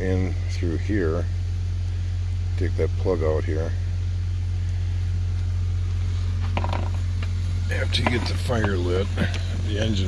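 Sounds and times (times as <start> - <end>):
steady low hum: 0.0 - 10.0
metal pipe clinking and scraping: 6.4 - 7.1.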